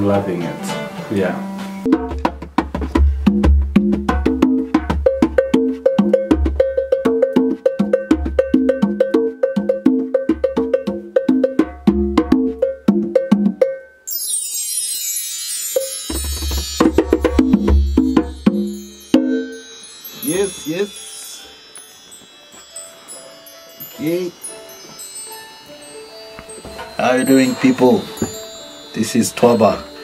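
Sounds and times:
bongos and djembe drumming: 0.0 - 13.8, 15.8 - 23.2, 23.8 - 30.0
bar chime shimmer: 14.0 - 30.0.

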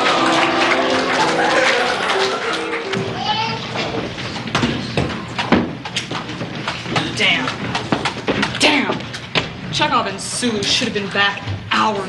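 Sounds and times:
music with held notes: 0.0 - 3.2
audience voices and laughter: 0.0 - 3.8
sharp knocks and thumps: 3.0 - 9.9.

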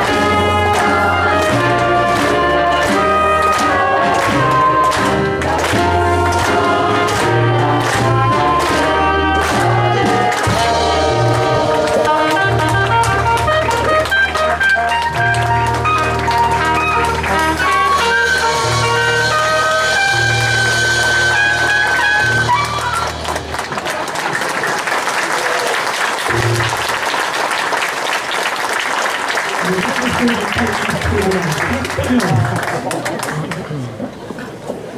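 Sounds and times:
jazz band playing: 0.0 - 24.2, 26.2 - 27.2
audience applause: 0.0 - 34.7.

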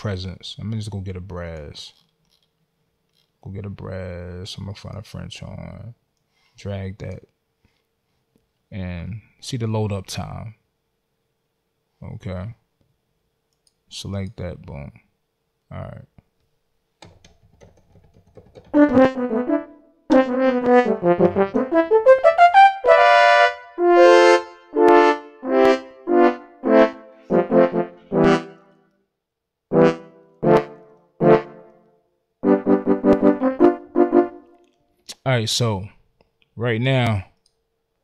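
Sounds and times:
french horn playing notes: 18.8 - 28.8, 29.7 - 34.6.

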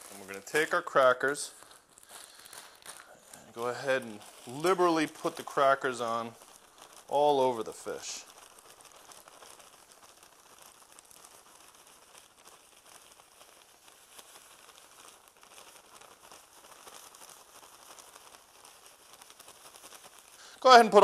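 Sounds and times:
crumbs pattering: 0.0 - 21.0
plastic bag crinkling: 0.0 - 21.0.

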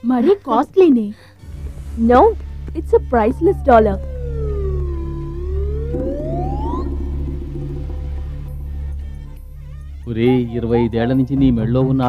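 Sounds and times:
pulsing low bass: 1.5 - 11.0
sliding electronic tone: 4.1 - 9.4.

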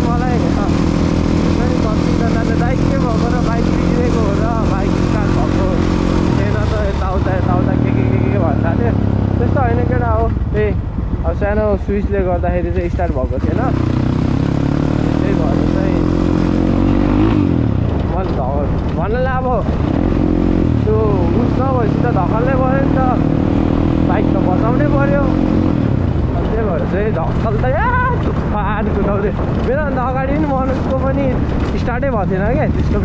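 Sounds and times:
dirt bike engine revving: 0.0 - 11.2, 13.2 - 18.8, 19.4 - 33.0.

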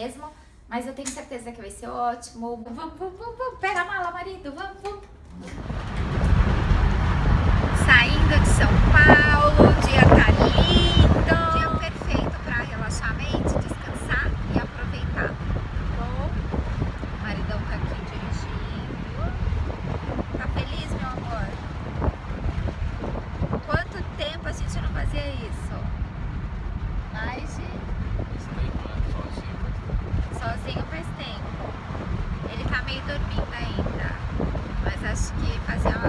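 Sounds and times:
woman speaking: 0.0 - 5.5, 7.8 - 16.4, 17.2 - 19.4, 20.4 - 21.6, 23.6 - 25.9, 27.2 - 27.6, 30.3 - 31.5, 32.4 - 34.2, 34.8 - 36.0
road noise: 5.3 - 36.0
wind buffeting microphone: 5.5 - 36.0.

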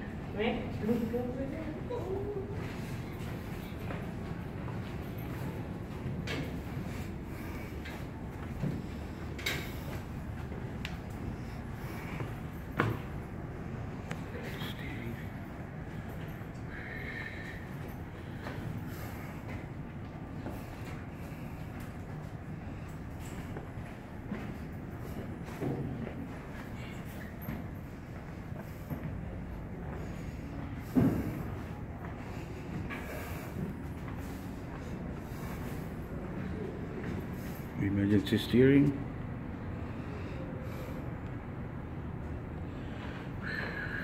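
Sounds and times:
machinery room rumble: 0.0 - 44.0.

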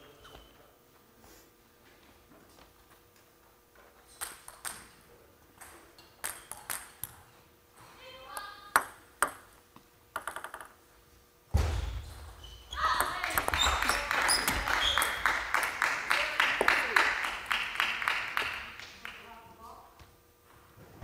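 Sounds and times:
table tennis ball bouncing: 5.6 - 7.2, 8.3 - 10.8, 12.8 - 15.2.

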